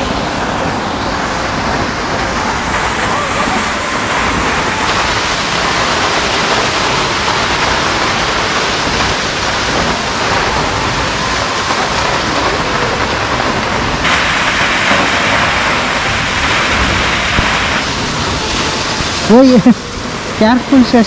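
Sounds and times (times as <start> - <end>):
waterfall rushing: 0.0 - 21.0.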